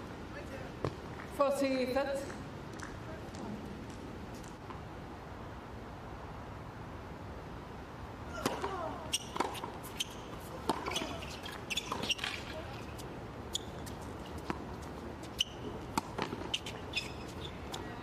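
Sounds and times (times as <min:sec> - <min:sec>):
tennis ball bouncing on court: 0:00.8 - 0:01.4, 0:08.4 - 0:13.0, 0:13.6 - 0:17.9
tennis ball hit by rackets: 0:08.4 - 0:09.9, 0:10.6 - 0:12.5, 0:15.9 - 0:17.8.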